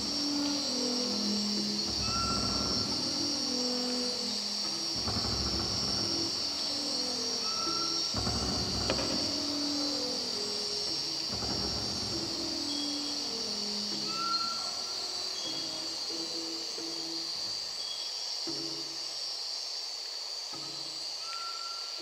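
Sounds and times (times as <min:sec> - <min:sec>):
quiet instrumental music: 0:00.0 - 0:19.4, 0:20.5 - 0:22.0
crickets chirping: 0:00.0 - 0:22.0.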